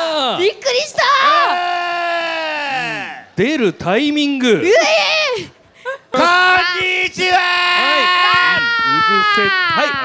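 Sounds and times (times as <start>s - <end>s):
man shouting: 1.2s - 3.4s, 6.2s - 10.0s.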